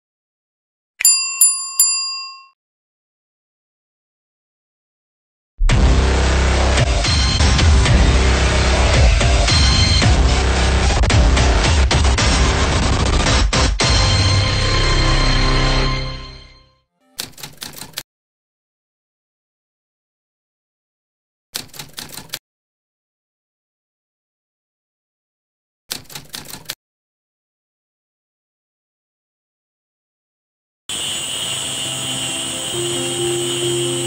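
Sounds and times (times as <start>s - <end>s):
small bell dings: 1.0s - 2.6s
background music: 5.7s - 17.4s, 31.6s - 34.0s
typewriter typing clicks: 17.2s - 18.0s, 21.6s - 22.4s, 25.9s - 26.8s.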